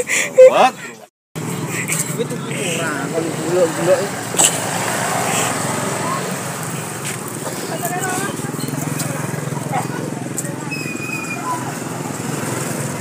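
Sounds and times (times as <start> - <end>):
crowd chatter: 0.0 - 13.0
motorbike engines running: 1.4 - 13.0.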